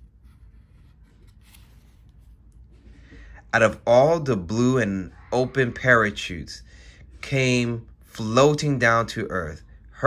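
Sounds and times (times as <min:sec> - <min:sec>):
low room hum: 0:00.0 - 0:10.0
cardboard book page turning: 0:00.2 - 0:02.8.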